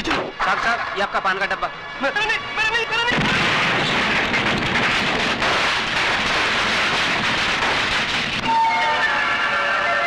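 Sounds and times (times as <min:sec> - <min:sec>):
car explosion and fire roar: 0:03.1 - 0:08.5
music with long held tones: 0:08.4 - 0:10.0.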